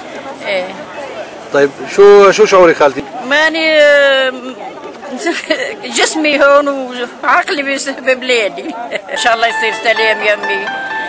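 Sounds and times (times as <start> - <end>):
people chattering in background: 0.0 - 11.0.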